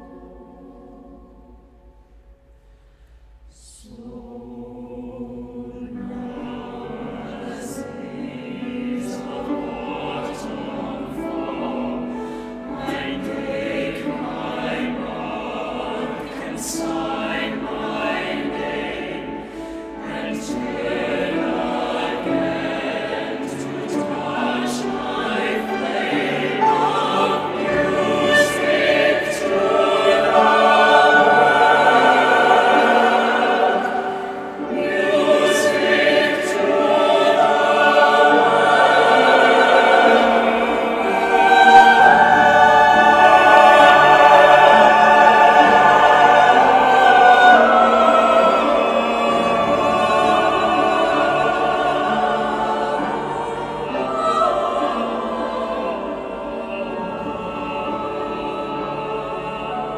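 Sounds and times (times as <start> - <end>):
mixed choir singing: 0.0 - 1.8, 3.5 - 59.9.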